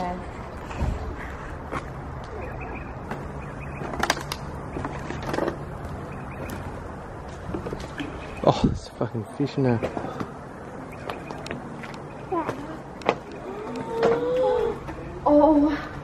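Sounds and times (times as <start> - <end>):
footsteps over rubble: 3.0 - 8.5, 9.7 - 13.5.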